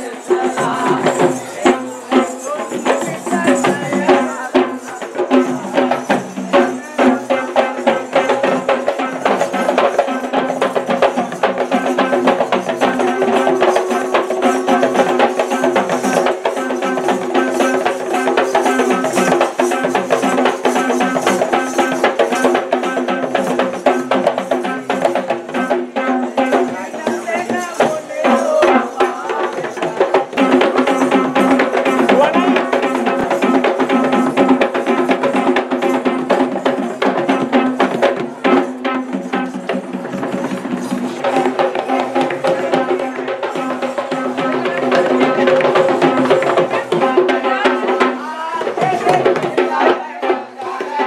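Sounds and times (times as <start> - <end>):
hand drums fast rhythm: 0.0 - 51.0
steady held drone: 12.0 - 19.2.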